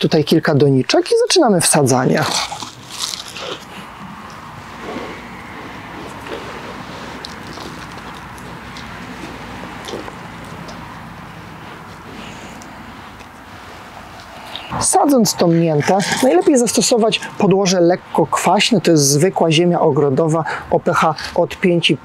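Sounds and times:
steady background hiss: 0.0 - 22.0
soil crunching and rustling: 2.0 - 14.8.

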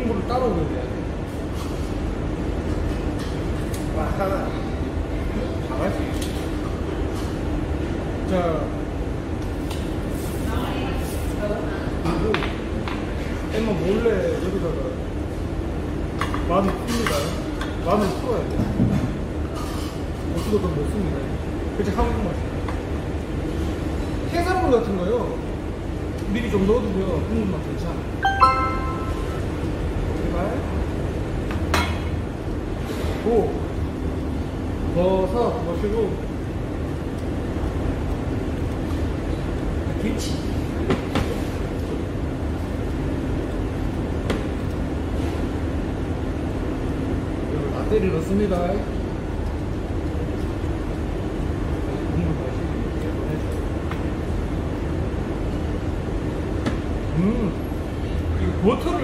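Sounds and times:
steady low background hum: 0.0 - 59.0.

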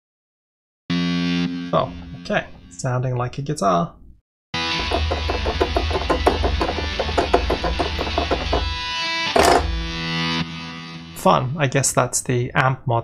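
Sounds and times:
distorted synthesizer guitar notes: 0.9 - 2.3, 4.6 - 11.0.

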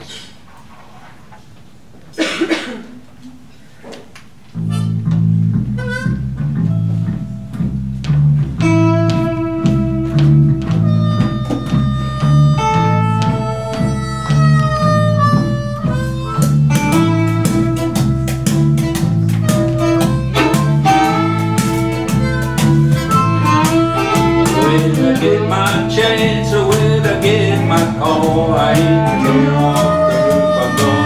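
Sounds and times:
harmonica melody: 4.6 - 5.1, 5.7 - 7.4, 8.6 - 31.0
string band playing: 5.0 - 31.0.

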